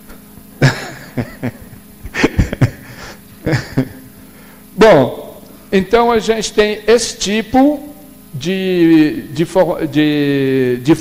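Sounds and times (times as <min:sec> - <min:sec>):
person laughing: 0:00.6 - 0:04.2
short chuckles: 0:00.6 - 0:04.2.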